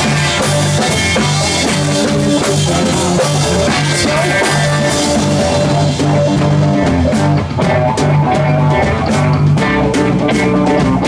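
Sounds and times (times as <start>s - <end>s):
live blues band playing: 0.0s - 11.0s.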